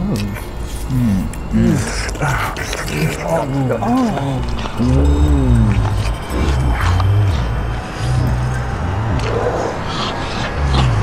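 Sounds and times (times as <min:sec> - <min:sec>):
low held bass notes: 0:00.0 - 0:11.0
moaning pitch glides: 0:00.1 - 0:11.0.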